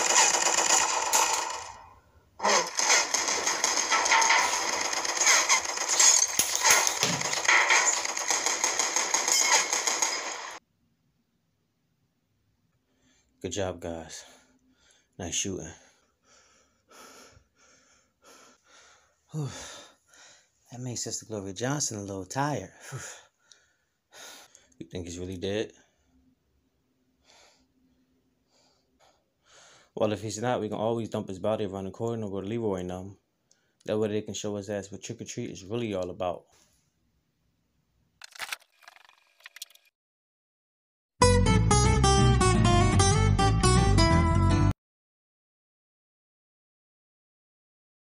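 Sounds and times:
person panting: 0:15.8 - 0:20.5, 0:28.5 - 0:30.0.

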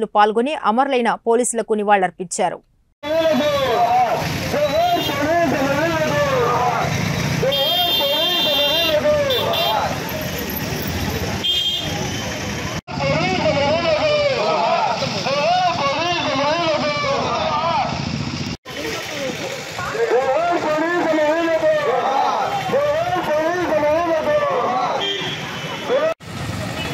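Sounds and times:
street traffic: 0:03.0 - 0:26.9
vehicle horn honking: 0:07.4 - 0:09.9, 0:11.4 - 0:12.5, 0:25.0 - 0:26.0.

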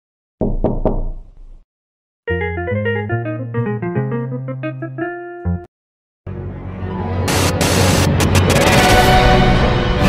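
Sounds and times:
knocks on a door: 0:00.4 - 0:01.3.

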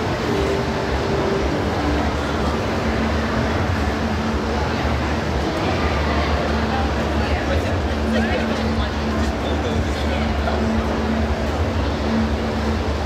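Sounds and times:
distant crowd voices talking: 0:00.0 - 0:13.0.

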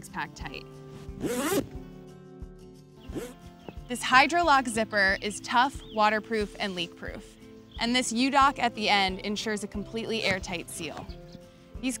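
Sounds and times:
background music: 0:00.0 - 0:12.0
stiff zipper being pulled: 0:01.0 - 0:01.8, 0:03.1 - 0:03.4.

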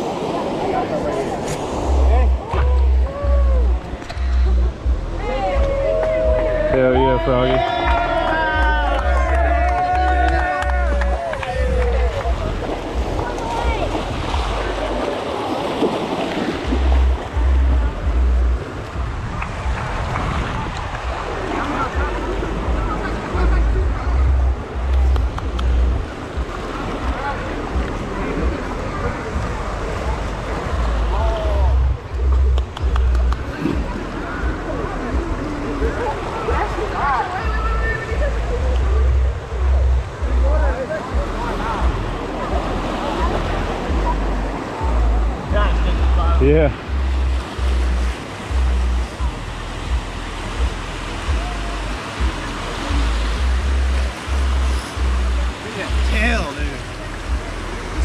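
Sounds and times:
wind buffeting microphone: 0:00.0 - 0:56.0
crowd talking indistinctly: 0:00.0 - 0:58.0
shallow surf washing: 0:00.0 - 0:58.0.

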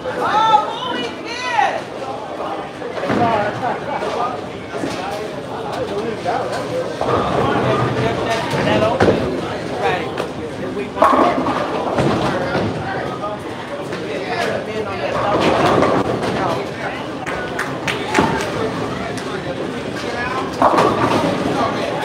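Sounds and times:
background chatter: 0:00.0 - 0:22.0
bowling balls and pins knocking: 0:15.1 - 0:16.7, 0:20.4 - 0:22.0.

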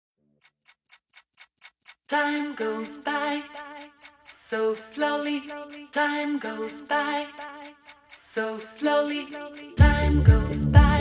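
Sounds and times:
clock ticking: 0:00.4 - 0:11.0.

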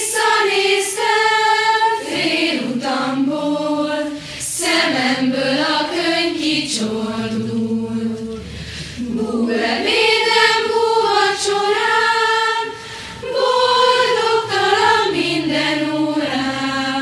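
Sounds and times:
choir singing in unison: 0:00.0 - 0:17.0.

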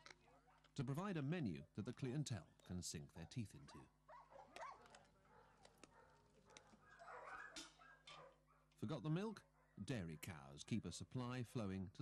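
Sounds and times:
dogs gnawing clicks: 0:04.5 - 0:08.3
dogs whining: 0:05.9 - 0:08.4.

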